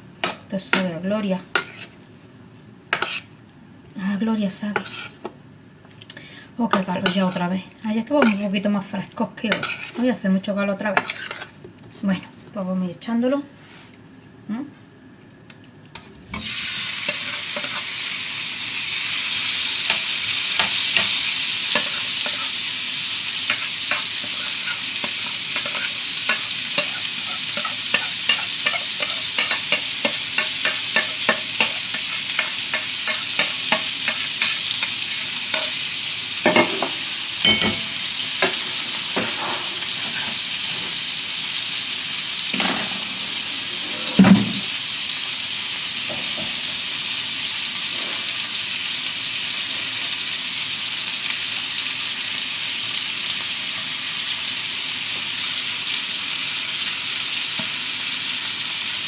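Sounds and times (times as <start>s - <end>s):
meat sizzling in a frying pan: 0.0s - 3.8s, 16.3s - 59.0s
meat hitting hot pan: 16.4s - 22.6s, 23.4s - 35.8s
spoon clicking on bowl and pan: 23.5s - 34.6s.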